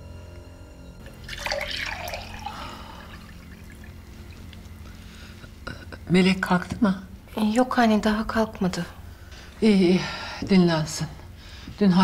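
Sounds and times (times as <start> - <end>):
drink poured into glass: 1.0 - 5.0.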